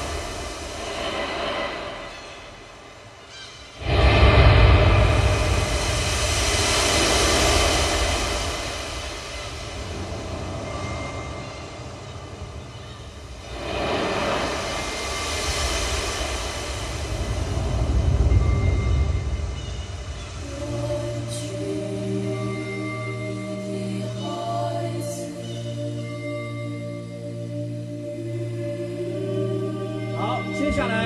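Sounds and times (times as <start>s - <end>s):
ocean waves over loudspeakers: 0.0s - 31.0s
sea wind: 0.0s - 31.0s
sustained musical tones: 18.0s - 31.0s.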